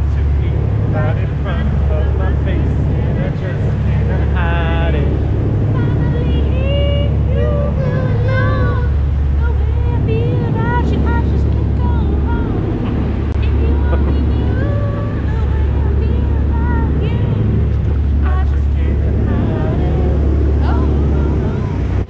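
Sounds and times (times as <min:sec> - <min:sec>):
boat engine droning: 0:00.0 - 0:22.0
rush of boat wake: 0:00.0 - 0:22.0
voices: 0:00.0 - 0:22.0.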